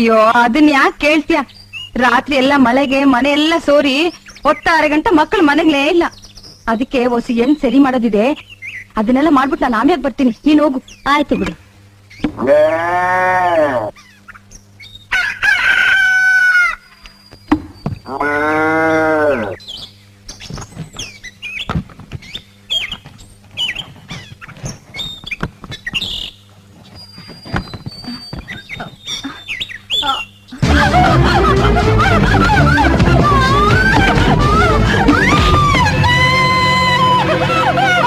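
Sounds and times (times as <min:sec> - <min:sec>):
cow mooing: 0:12.4 - 0:13.9, 0:18.1 - 0:19.6
rooster crowing: 0:15.1 - 0:16.9, 0:30.6 - 0:38.0
chicken clucks and squawks: 0:15.1 - 0:17.1
loud film music: 0:30.6 - 0:38.0.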